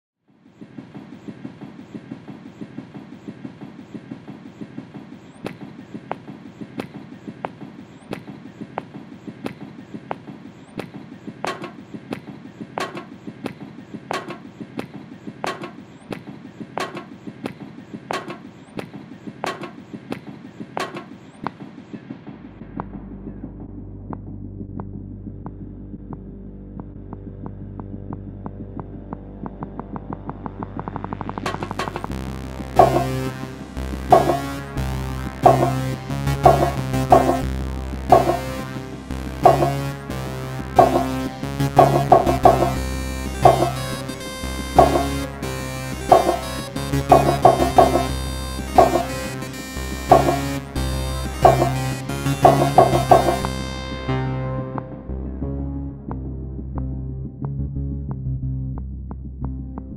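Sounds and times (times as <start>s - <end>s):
low synthesized drone: 22.5s - 59.9s
fast clattering electronic pulse: 31.4s - 53.8s
sharp hit: 31.5s - 53.6s.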